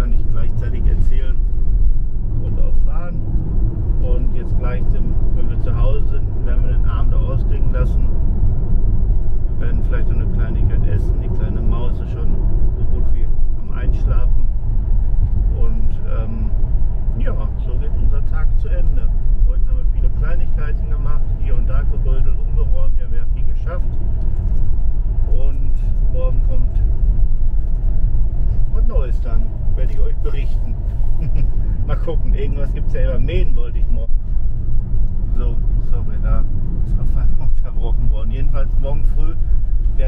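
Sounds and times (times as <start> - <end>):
car engine and road noise: 0.0 - 40.0.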